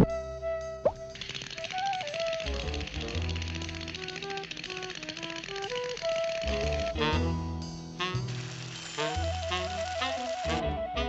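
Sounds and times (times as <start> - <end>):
cartoon music: 0.0 - 7.4, 8.0 - 11.0
cartoon teeth chattering: 1.2 - 7.0.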